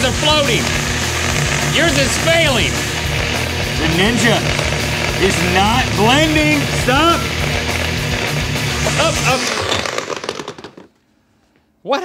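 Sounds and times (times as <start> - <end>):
hard rock music: 0.0 - 10.0
blenders running: 0.0 - 10.9
blender motor straining: 0.0 - 11.0.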